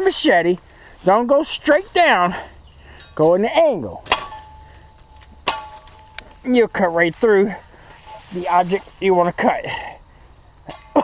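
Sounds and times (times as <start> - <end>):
machete chopping saplings: 2.9 - 6.6, 10.6 - 11.0.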